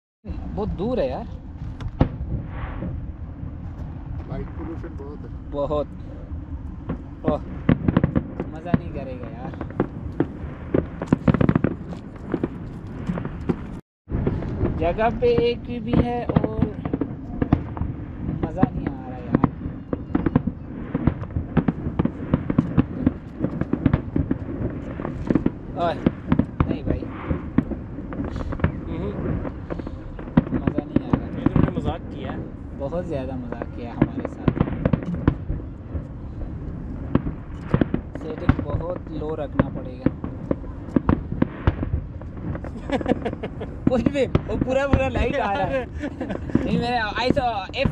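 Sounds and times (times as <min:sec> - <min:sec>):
steady low rumble: 0:00.2 - 0:47.9
distant firework bang: 0:00.3 - 0:47.9.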